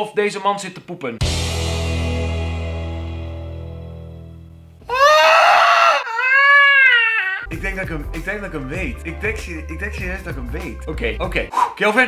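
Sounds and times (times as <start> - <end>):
man's strained high-pitched squeal: 4.9 - 7.5.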